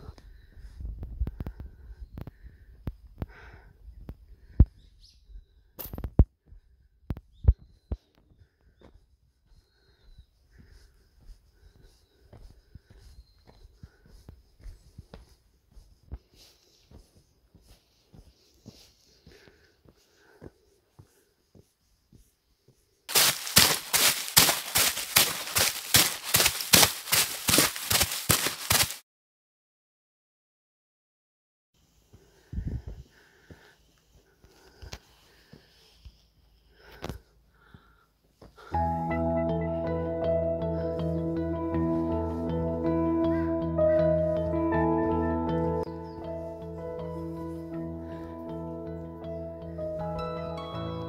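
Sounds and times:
small birds chirping: 0:03.8 - 0:05.7, 0:07.1 - 0:21.3, 0:45.8 - 0:47.6
footsteps on concrete: 0:08.8 - 0:29.0.

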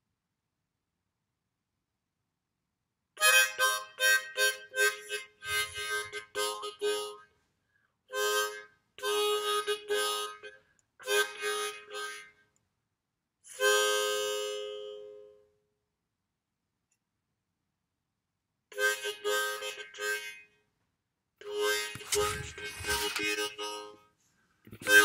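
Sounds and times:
harmonica notes: 0:03.2 - 0:07.3, 0:08.1 - 0:12.5, 0:13.5 - 0:15.5, 0:18.7 - 0:20.6, 0:21.4 - 0:24.1, 0:24.7 - 0:25.0.

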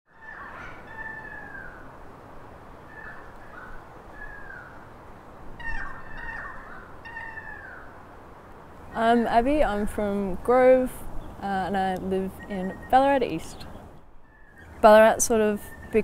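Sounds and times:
birds calling: 0:00.1 - 0:02.0, 0:02.7 - 0:08.1, 0:08.8 - 0:16.0
outdoor background hiss: 0:00.1 - 0:16.0.

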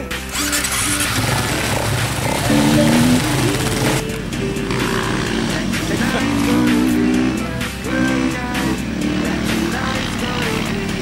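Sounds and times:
motorcycles revving: 0:00.0 - 0:11.0
pop song playing: 0:00.0 - 0:11.0.

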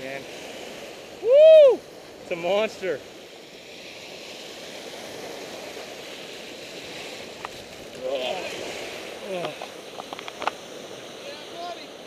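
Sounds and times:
surf breaking on beach: 0:00.0 - 0:12.0.

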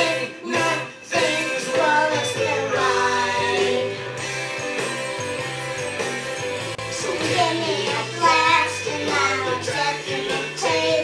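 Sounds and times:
rock song playing: 0:00.0 - 0:11.0
child singing: 0:07.0 - 0:11.0.

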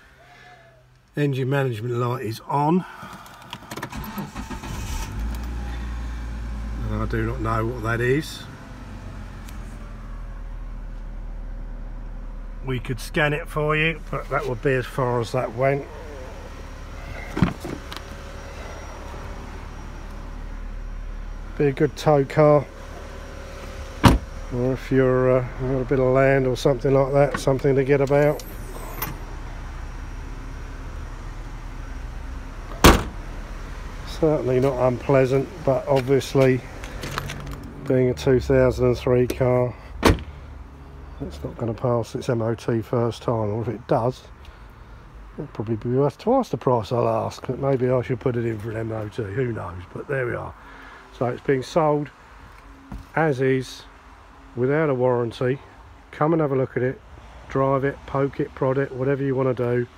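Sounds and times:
car keys rattling in ignition: 0:03.0 - 0:05.6, 0:34.7 - 0:37.9
steady low rumble: 0:06.0 - 0:39.4
steady low hum: 0:08.5 - 0:41.6
car tailgate slamming: 0:17.0 - 0:18.0, 0:23.7 - 0:24.4, 0:32.7 - 0:33.2, 0:40.0 - 0:40.3.

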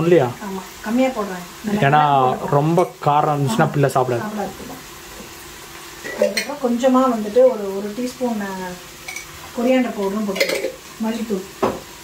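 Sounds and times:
food frying in oil: 0:00.0 - 0:12.0
woman talking: 0:00.4 - 0:02.0, 0:06.1 - 0:08.8, 0:09.6 - 0:11.6.

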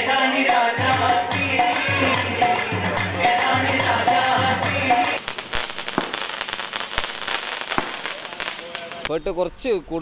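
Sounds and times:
fireworks crackling: 0:05.1 - 0:09.1
fireworks sharp bangs: 0:05.2 - 0:09.1.

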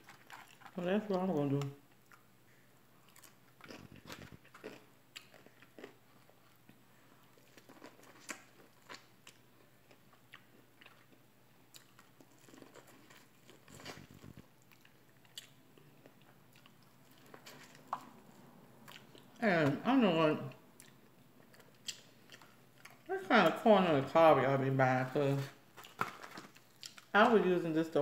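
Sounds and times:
person chewing corn on the cob: 0:00.0 - 0:00.8, 0:03.0 - 0:19.4, 0:20.8 - 0:23.1, 0:25.8 - 0:27.1
person talking: 0:00.8 - 0:01.8, 0:19.4 - 0:20.6, 0:23.1 - 0:25.6, 0:27.1 - 0:28.0.

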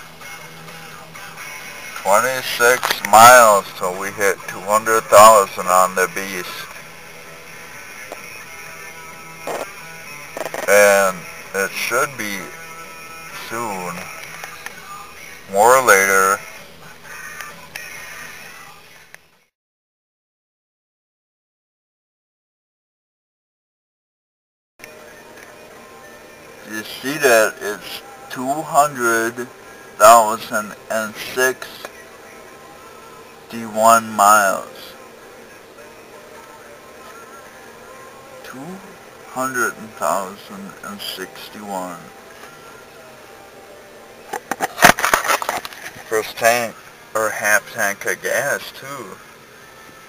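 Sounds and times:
vehicle cabin background noise: 0:00.0 - 0:19.2, 0:24.8 - 0:50.0
faint steady hiss: 0:00.0 - 0:19.3, 0:24.8 - 0:50.0.

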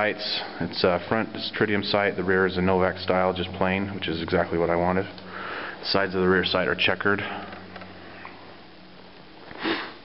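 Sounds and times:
person sniffing: 0:09.5 - 0:10.0.

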